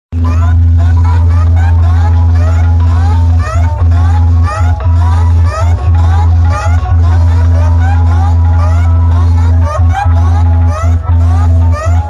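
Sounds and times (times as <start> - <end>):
deep bass drone: 0.1 - 12.0.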